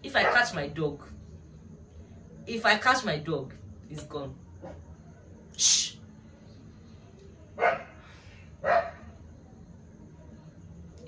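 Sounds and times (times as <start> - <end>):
dog barking: 0.2 - 0.6, 4.6 - 4.8, 7.6 - 8.0, 8.6 - 9.2.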